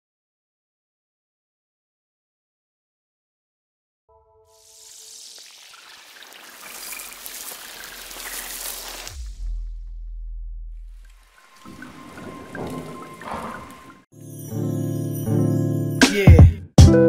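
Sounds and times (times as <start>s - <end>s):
deep bass boom: 9.1s - 11.2s.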